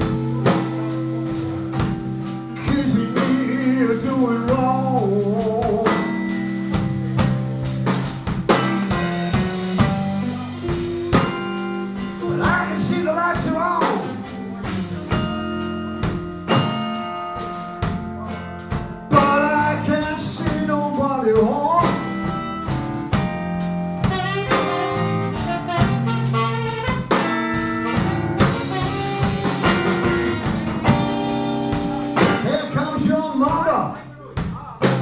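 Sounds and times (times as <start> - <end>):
saxophone lead: 0.0 - 21.0, 21.8 - 33.0
bass guitar: 0.0 - 35.0
drum kit steady beat: 0.0 - 35.0
electric guitar: 0.0 - 35.0.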